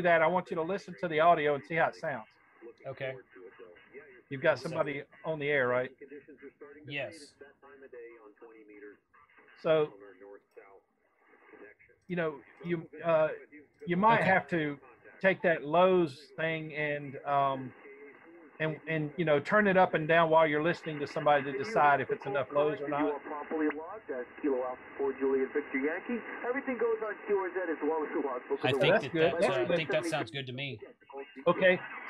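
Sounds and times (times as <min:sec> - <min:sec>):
thin radio voice through speaker: 0:00.0 - 0:02.2, 0:02.9 - 0:03.2, 0:04.3 - 0:05.9, 0:06.9 - 0:07.2, 0:09.6 - 0:09.9, 0:12.1 - 0:17.7, 0:18.6 - 0:31.9.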